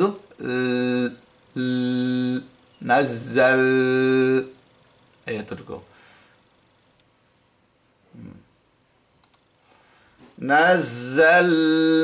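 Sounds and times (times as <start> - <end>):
man humming low: 0.0 - 2.5, 3.4 - 4.5, 8.1 - 8.5
computer mouse clicks: 9.2 - 9.8.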